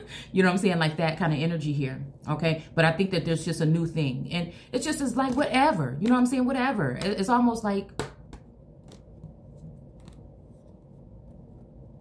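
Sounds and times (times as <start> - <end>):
low room hum: 0.0 - 12.0
card stock clicks and rubs: 8.8 - 10.8.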